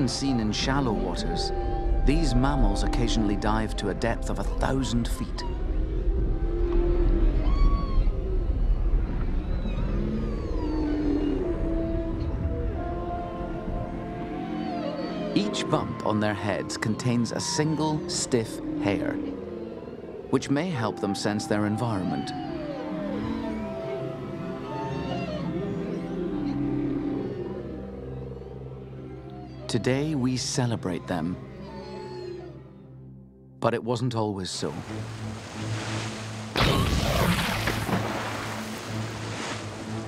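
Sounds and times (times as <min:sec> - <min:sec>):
orchestral film score chords: 0:00.0 - 0:07.4, 0:11.4 - 0:40.0
whale song calls: 0:00.0 - 0:33.2
background music: 0:00.0 - 0:40.0.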